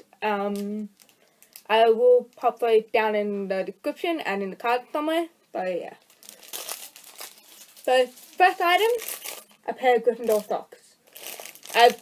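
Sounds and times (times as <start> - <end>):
plastic packaging crinkling: 0.5 - 2.4, 5.9 - 12.0
person speaking: 1.7 - 11.0, 11.6 - 12.0.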